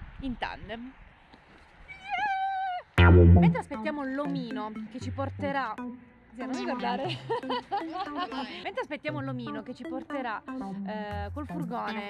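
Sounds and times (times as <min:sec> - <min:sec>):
woman shouting joyfully: 0:02.0 - 0:02.9.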